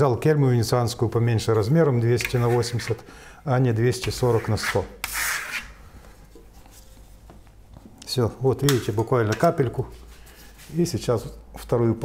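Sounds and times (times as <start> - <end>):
trowel scraping paint: 2.2 - 3.0, 4.0 - 5.8.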